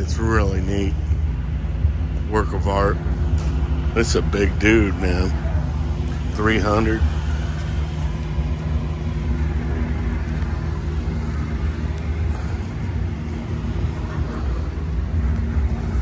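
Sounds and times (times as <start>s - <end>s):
engine idling: 0.0s - 16.0s.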